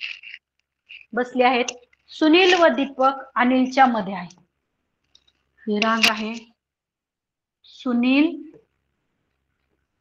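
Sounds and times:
woman speaking: 0:01.1 - 0:04.5, 0:05.6 - 0:06.6, 0:07.6 - 0:08.6.

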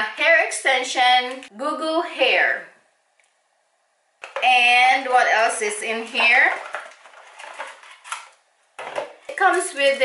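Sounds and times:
cardboard and plastic rustling: 0:06.1 - 0:09.5.

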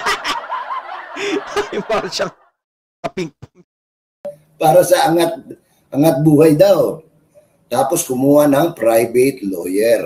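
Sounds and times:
man laughing: 0:00.0 - 0:02.4.

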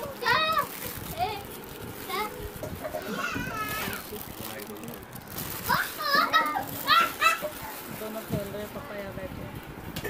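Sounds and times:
plastic bag and foil rustling: 0:00.0 - 0:09.2
children calling out: 0:02.9 - 0:04.0, 0:05.7 - 0:07.6.

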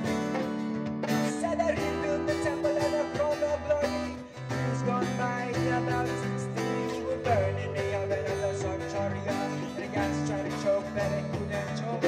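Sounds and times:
acoustic reggae band playing: 0:00.0 - 0:12.0
man singing: 0:00.0 - 0:12.0.

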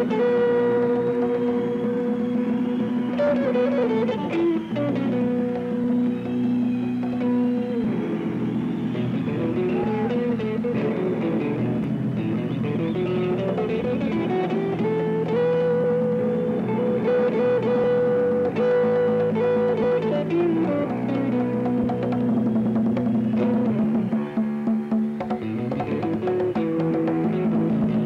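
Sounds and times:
picked guitar melody: 0:00.0 - 0:28.0
strummed guitar chords: 0:00.0 - 0:28.0.

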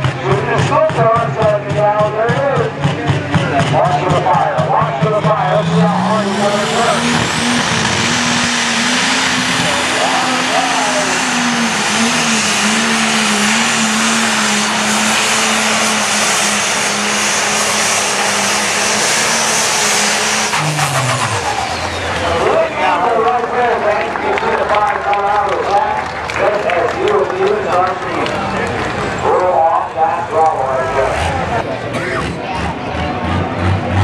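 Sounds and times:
diesel engine running flat out: 0:00.0 - 0:34.0.

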